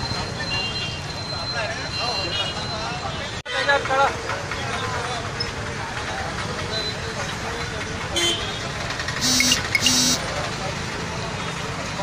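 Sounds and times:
street traffic: 0:00.0 - 0:12.0
crowd chatter: 0:00.2 - 0:12.0
vehicle horn honks: 0:09.2 - 0:10.3.

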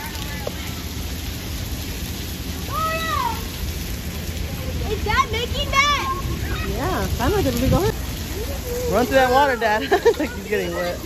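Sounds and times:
running and splashing water: 0:00.0 - 0:11.0
child's drawn-out voice: 0:02.7 - 0:03.6, 0:04.9 - 0:07.0.

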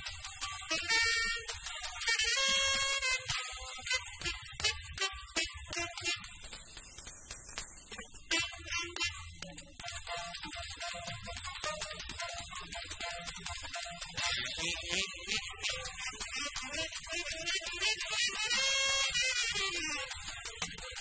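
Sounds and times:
tenor saxophone: 0:00.0 - 0:06.5, 0:08.3 - 0:21.0
cymbals: 0:00.0 - 0:21.0.

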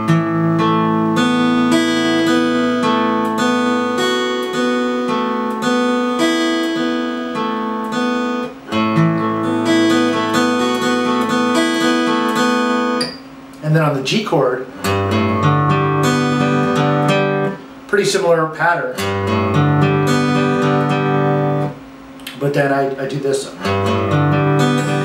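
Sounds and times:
acoustic guitar fingerpicking: 0:00.0 - 0:13.7, 0:14.7 - 0:17.7, 0:18.9 - 0:22.5, 0:23.5 - 0:25.0.

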